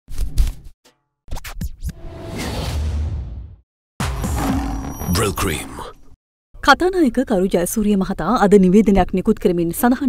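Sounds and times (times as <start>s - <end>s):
music with sharp percussive hits: 4.0s - 5.2s.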